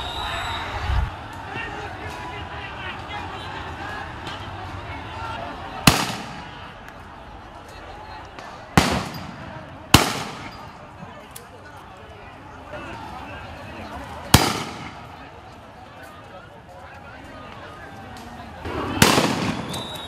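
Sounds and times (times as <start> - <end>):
gunshots with echo: 5.9 - 6.6, 8.8 - 10.6, 14.3 - 15.0, 18.7 - 19.8.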